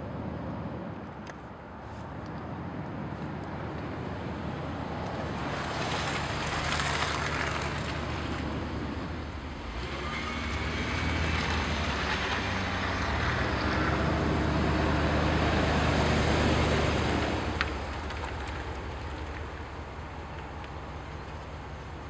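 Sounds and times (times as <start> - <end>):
vehicle engine hum: 0.0 - 22.0.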